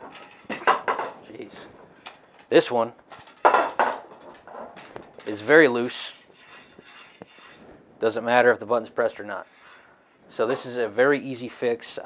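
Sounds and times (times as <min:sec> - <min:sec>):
metal leg scraping clatter: 0:00.0 - 0:07.6.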